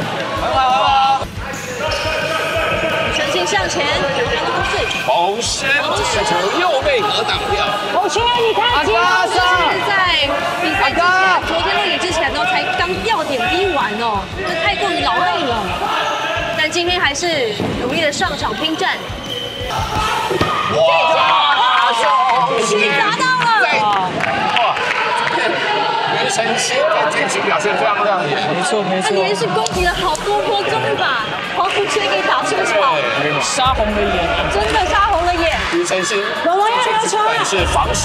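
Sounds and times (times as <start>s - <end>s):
voices: 0.0s - 21.3s, 22.0s - 38.0s
music: 0.0s - 21.6s, 29.6s - 38.0s
people shouting: 0.0s - 27.7s, 28.4s - 38.0s.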